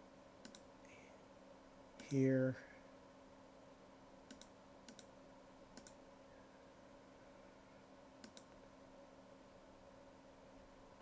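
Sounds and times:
faint steady hum: 0:00.0 - 0:11.0
computer mouse clicking: 0:00.4 - 0:00.7, 0:04.3 - 0:05.1, 0:05.8 - 0:06.0, 0:08.2 - 0:08.6.

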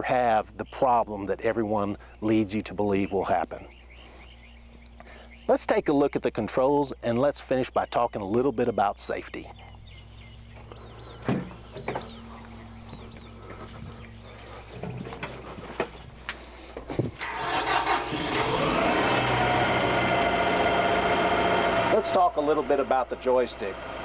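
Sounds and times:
scattered clunks: 0:10.6 - 0:13.3, 0:14.7 - 0:17.3
tractor diesel engine starting: 0:10.9 - 0:16.0, 0:17.1 - 0:24.0.

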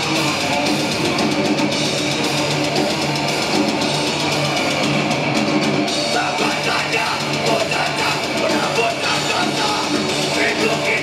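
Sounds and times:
death metal band playing: 0:00.0 - 0:11.0.

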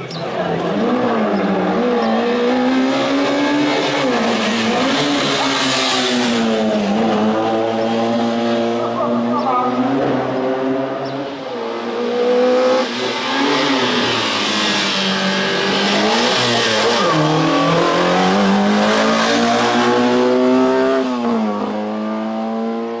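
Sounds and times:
car engine revving hard: 0:00.4 - 0:23.0.

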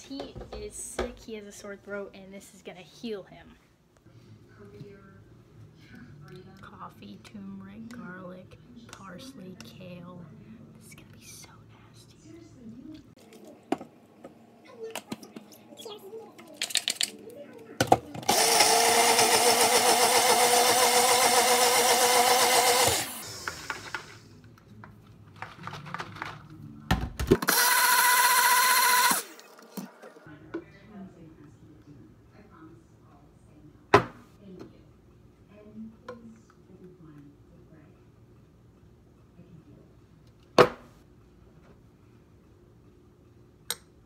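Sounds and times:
blender motor whine: 0:18.2 - 0:24.2, 0:27.4 - 0:29.4.

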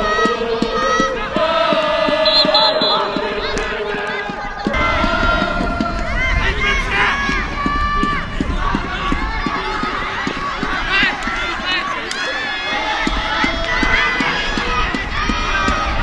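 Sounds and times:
people shouting and calling: 0:00.0 - 0:16.0
running on turf: 0:00.0 - 0:16.0.

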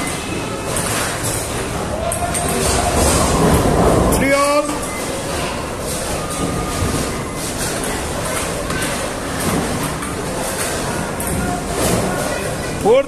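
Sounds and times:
loud hall rumble: 0:00.0 - 0:12.8.

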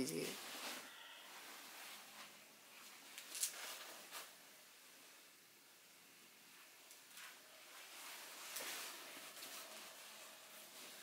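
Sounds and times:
silk fabric rustling: 0:00.2 - 0:04.4, 0:06.5 - 0:11.0.

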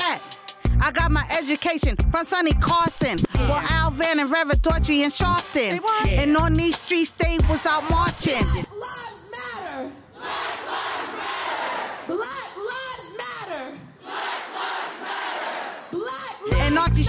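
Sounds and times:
hip hop beat: 0:00.0 - 0:09.2, 0:16.0 - 0:17.0
crowd chanting: 0:10.0 - 0:12.3, 0:13.9 - 0:16.1
crowd shouting: 0:10.1 - 0:12.3, 0:13.9 - 0:16.2.

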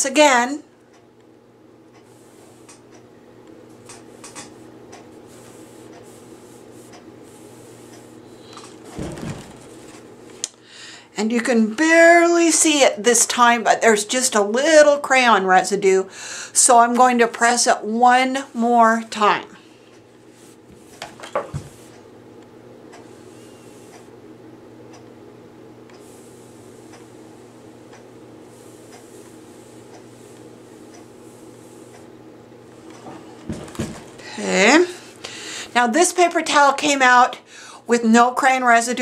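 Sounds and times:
steady low hum: 0:00.0 - 0:39.0
paper towel rustling: 0:05.2 - 0:10.1
iron knocking and thudding: 0:08.8 - 0:10.0.

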